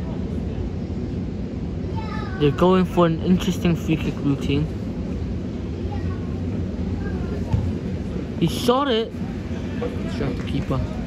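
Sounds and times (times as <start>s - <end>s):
faint distant voices: 0.0s - 11.0s
steady low rumble: 0.0s - 11.0s.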